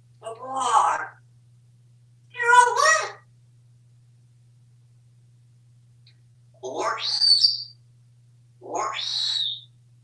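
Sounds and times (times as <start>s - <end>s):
parrot calls rising to high note: 6.6s - 7.7s, 8.6s - 9.6s.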